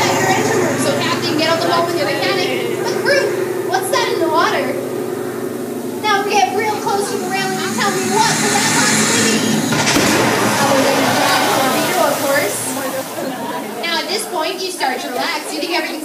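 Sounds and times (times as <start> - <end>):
voices: 0.0 - 16.0
loud rushing hiss of water spray: 8.3 - 13.9
sharp crack: 9.7 - 13.3.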